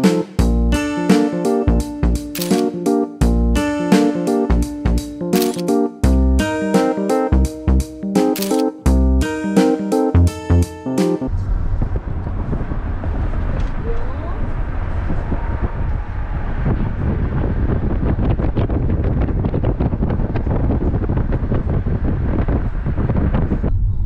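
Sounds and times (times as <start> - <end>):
low rumble of car on road: 11.3 - 24.0
wind buffeting microphone: 11.3 - 24.0.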